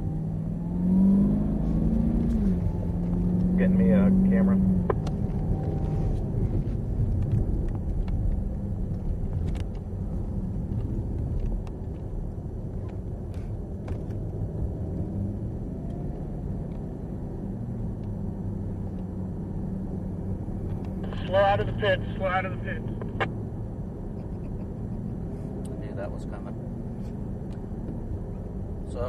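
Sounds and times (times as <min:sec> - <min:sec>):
car engine heard inside cabin: 0:00.0 - 0:29.0
road noise: 0:00.0 - 0:29.0.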